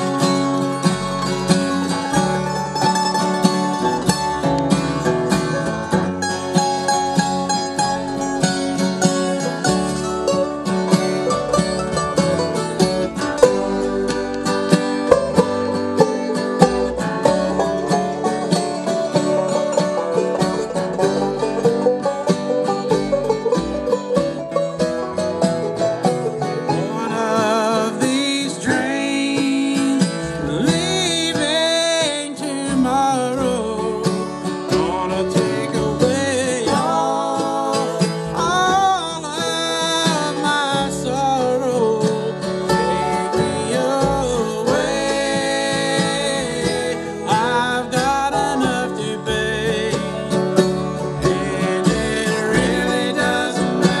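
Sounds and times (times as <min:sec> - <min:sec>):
person singing: 0:00.0 - 0:04.5, 0:26.6 - 0:54.0
guitar: 0:00.0 - 0:54.0
picked mandolin: 0:00.0 - 0:54.0
upright bass: 0:00.0 - 0:54.0.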